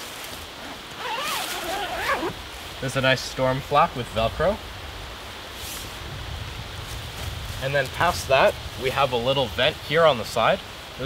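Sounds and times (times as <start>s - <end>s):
zipper being pulled shut: 0.5s - 2.4s.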